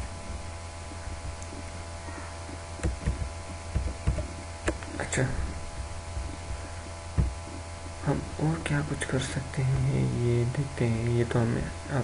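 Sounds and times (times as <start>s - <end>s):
low electrical hum: 0.0s - 12.0s
dull low thump: 5.5s - 8.0s.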